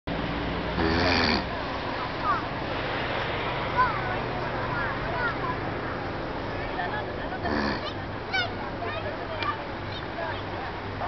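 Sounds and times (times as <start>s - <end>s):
steady outdoor noise: 0.1s - 11.0s.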